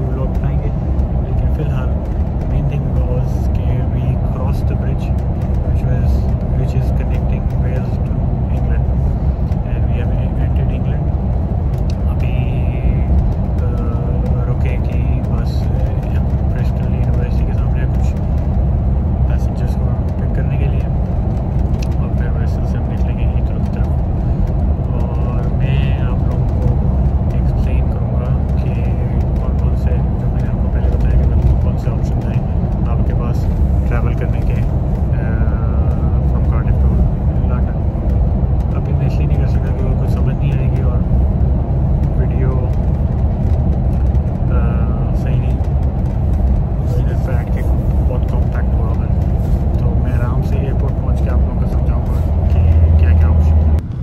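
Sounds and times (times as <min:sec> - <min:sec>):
coach engine and tyres drone: 0:00.0 - 0:54.0.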